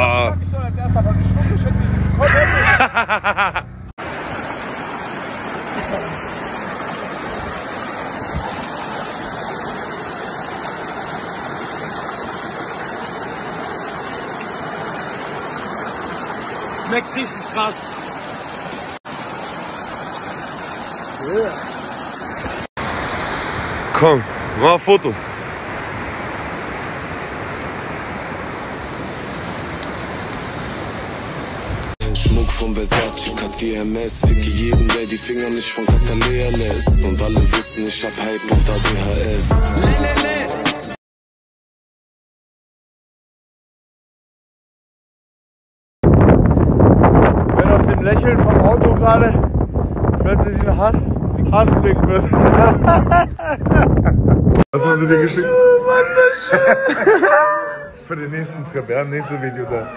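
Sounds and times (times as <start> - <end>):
stream rushing over rocks: 4.0 - 32.0.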